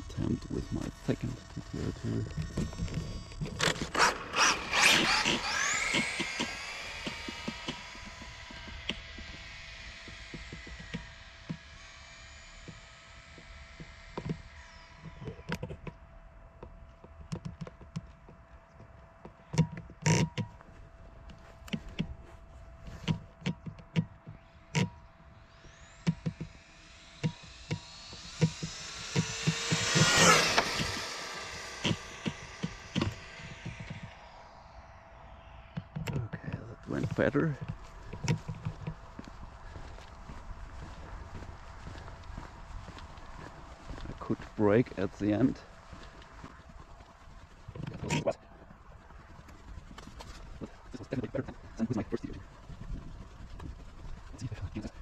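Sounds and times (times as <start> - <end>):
electric toy car motor whine: 0.0 - 18.0, 19.4 - 36.2, 36.9 - 48.3, 49.1 - 55.0
sharp clicks: 0.4 - 11.8, 23.0 - 39.3.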